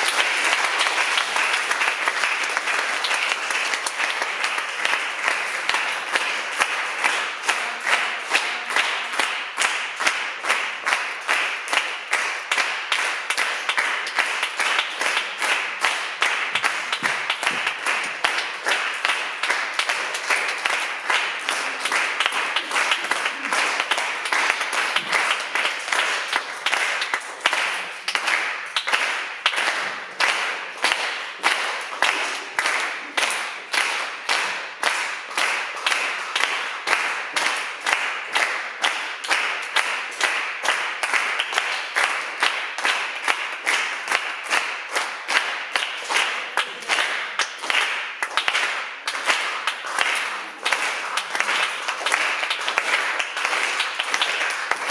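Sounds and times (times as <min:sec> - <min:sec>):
audience applauding rhythmically: 0:00.0 - 0:54.9.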